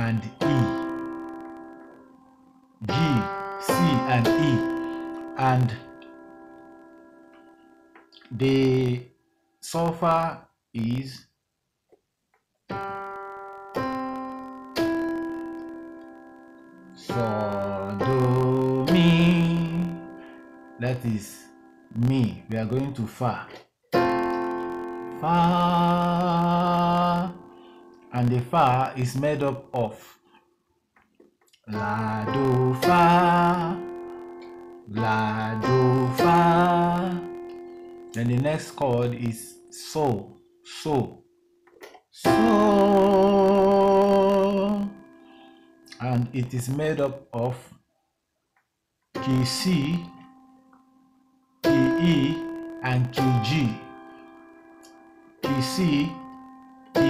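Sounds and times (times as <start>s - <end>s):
keyboard piano notes: 0.0s - 10.4s, 11.9s - 47.5s, 49.1s - 57.0s.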